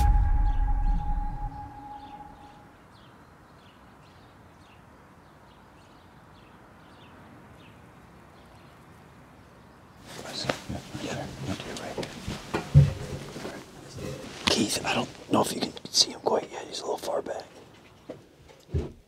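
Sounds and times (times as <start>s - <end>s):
deep boom transition hit: 0.0s - 2.6s
soft high chirps: 0.0s - 2.7s
faint outdoor ambience: 0.0s - 19.0s.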